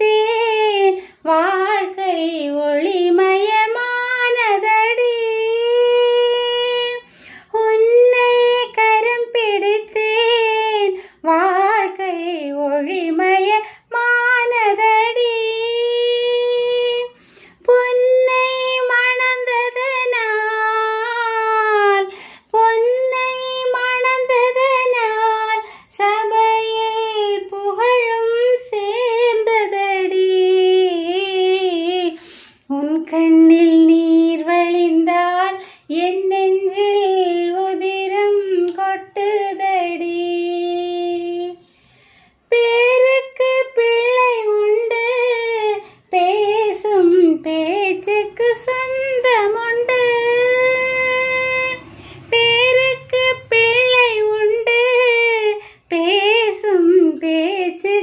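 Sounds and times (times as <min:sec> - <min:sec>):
woman singing unaccompanied: 0:00.0 - 0:41.6, 0:42.4 - 0:58.0.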